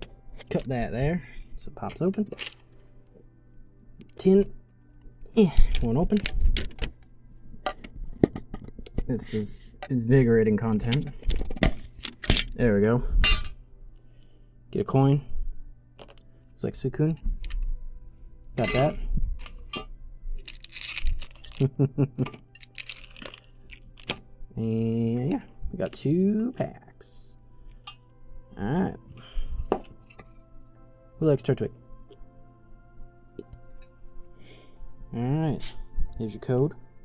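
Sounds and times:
metal tin clicking and clinking: 18.6s - 19.9s
foil wrappers crinkling: 20.4s - 24.2s.

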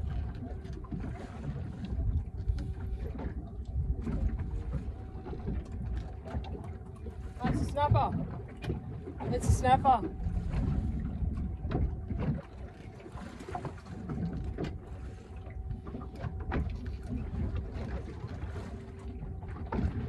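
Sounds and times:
faint steady hum: 0.0s - 20.0s
water slapping boat hull: 0.0s - 20.0s
wind buffeting microphone: 7.2s - 14.9s.

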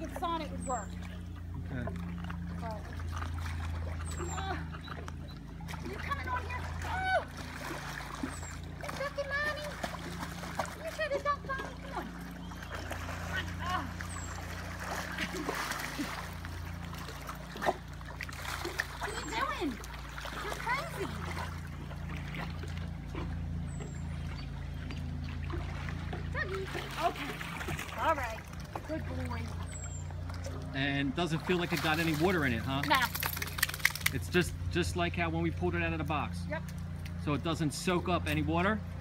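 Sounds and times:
low hum: 0.0s - 39.0s
water splashing and sloshing: 0.0s - 39.0s.

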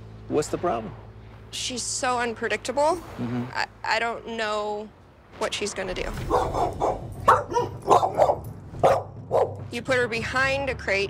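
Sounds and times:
dog barking sharply: 6.3s - 9.6s.

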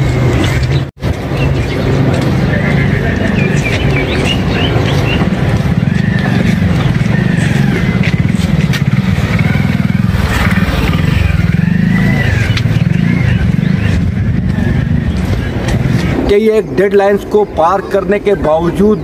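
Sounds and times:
vehicle engine running: 0.0s - 16.2s.

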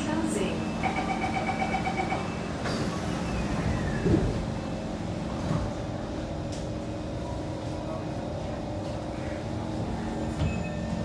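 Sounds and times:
train cabin hum: 0.0s - 11.0s
train doors sliding shut: 0.8s - 6.8s, 10.0s - 11.0s.

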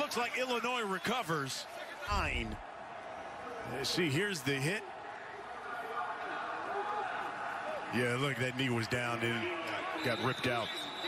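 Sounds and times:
stadium field background noise: 0.0s - 11.0s.

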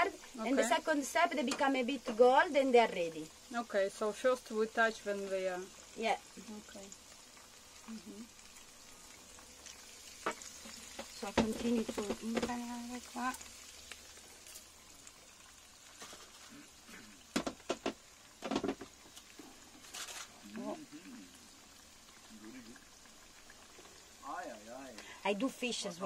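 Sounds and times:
fish deep-frying in oil: 0.0s - 26.0s.

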